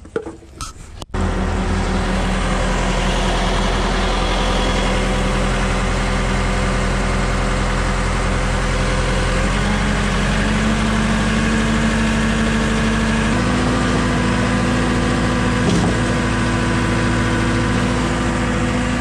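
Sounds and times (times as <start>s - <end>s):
concrete pump engine running: 1.0s - 19.0s.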